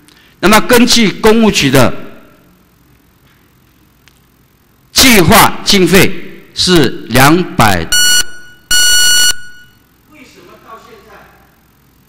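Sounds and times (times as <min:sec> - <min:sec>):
electronic buzzer beep: 0:07.9 - 0:09.8.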